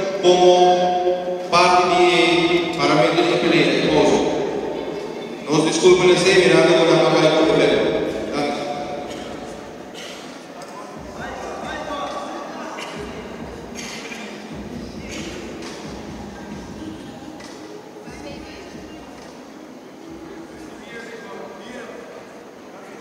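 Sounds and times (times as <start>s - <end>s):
people talking and calling out: 0.0s - 23.0s.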